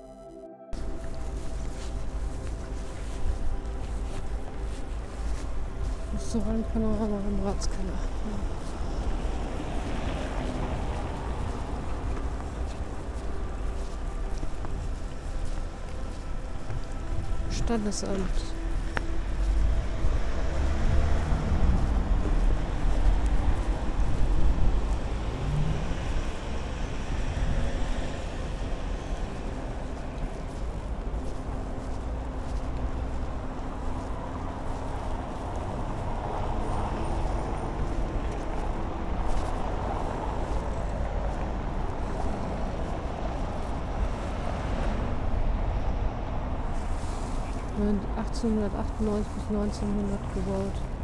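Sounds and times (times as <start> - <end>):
cars passing: 0.7 - 51.0.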